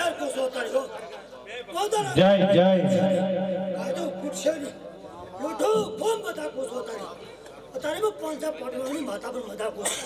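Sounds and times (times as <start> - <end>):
man speaking over a microphone: 0.0 - 10.0.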